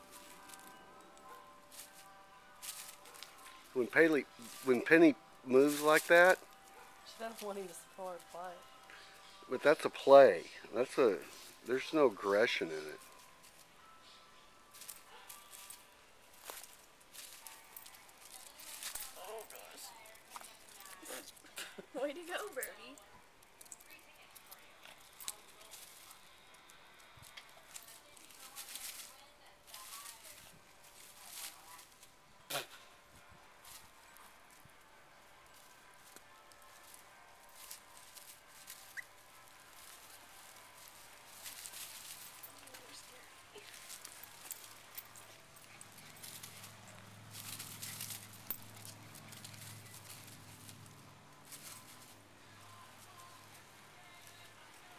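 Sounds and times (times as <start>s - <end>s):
dry leaves rustling: 0.0s - 54.9s.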